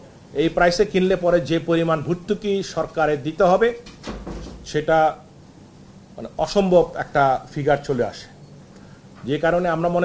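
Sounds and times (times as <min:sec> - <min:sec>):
man speaking: 0:04.6 - 0:05.2.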